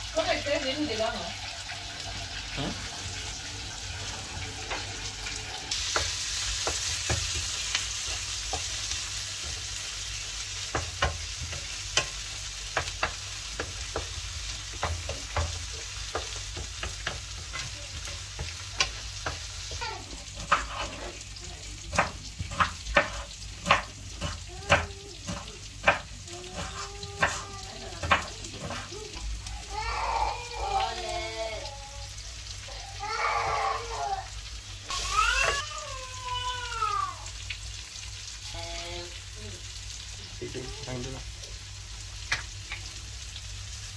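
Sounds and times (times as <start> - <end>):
masala sizzling in a pan: 0.0 - 43.9
spatula clicking against a pan: 10.7 - 19.8.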